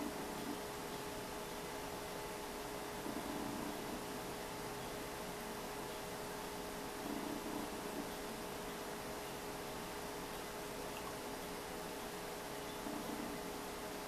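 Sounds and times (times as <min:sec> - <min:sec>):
background hiss: 0:00.0 - 0:14.0
faint constant hum: 0:00.0 - 0:14.0.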